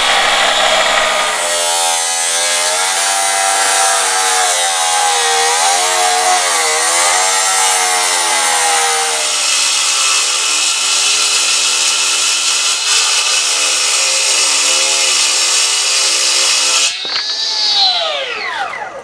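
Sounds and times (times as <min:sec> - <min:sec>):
cut-off saw cutting stone: 0:00.0 - 0:19.0
cut-off saw grinding steel: 0:00.0 - 0:19.0.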